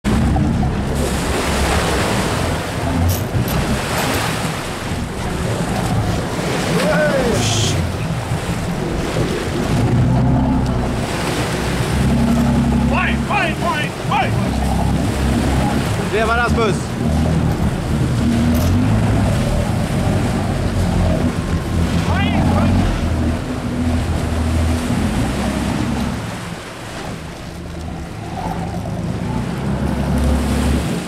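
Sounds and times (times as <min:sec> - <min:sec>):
boat engine running: 0:00.0 - 0:31.0
sea water rushing and splashing: 0:00.0 - 0:31.0
wind buffeting microphone: 0:00.0 - 0:31.0.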